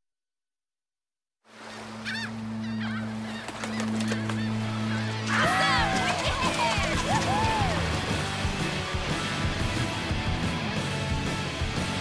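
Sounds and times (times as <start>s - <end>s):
birds squawking: 1.6s - 7.9s.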